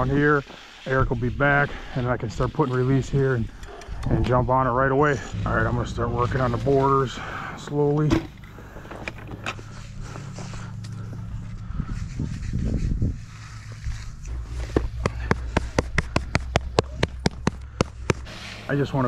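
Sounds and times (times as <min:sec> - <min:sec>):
low steady hum: 0:00.0 - 0:19.0
hand slapping rubber skin on concrete: 0:14.8 - 0:18.3.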